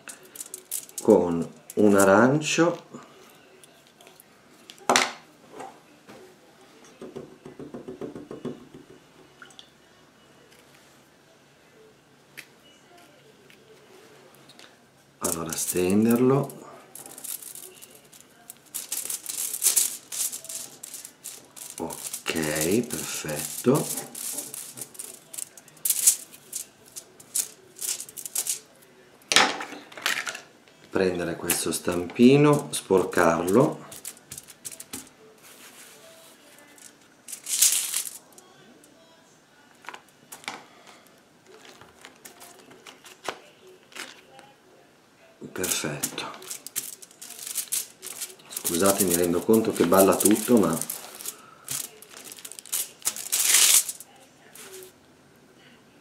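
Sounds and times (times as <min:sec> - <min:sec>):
aluminium foil crinkling: 0:00.0 - 0:02.2, 0:15.2 - 0:28.9, 0:31.5 - 0:38.5, 0:39.8 - 0:44.5, 0:45.5 - 0:54.9.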